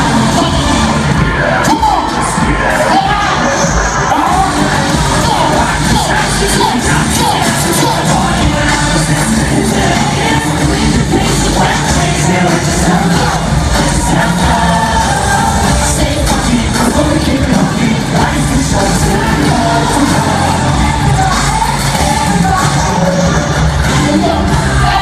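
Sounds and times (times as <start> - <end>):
crowd noise: 0.0 - 25.0
live concert music with vocals: 0.0 - 25.0.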